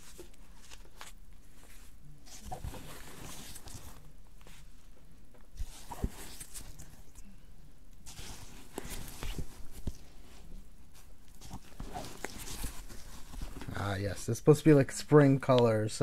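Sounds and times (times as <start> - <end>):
hands rustling yarn and burlap: 0.0 - 7.2, 8.0 - 14.4.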